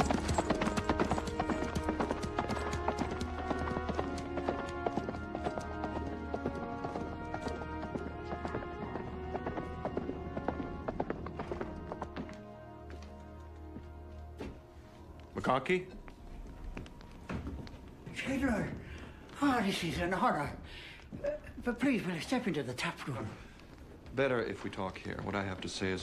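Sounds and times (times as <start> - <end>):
horse hooves clip-clopping: 0.0 - 20.0, 23.6 - 26.0
orchestral film score: 0.0 - 26.0.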